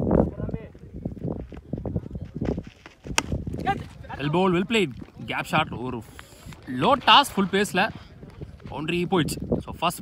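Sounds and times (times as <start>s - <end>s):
running footsteps on dirt: 0.0s - 9.6s.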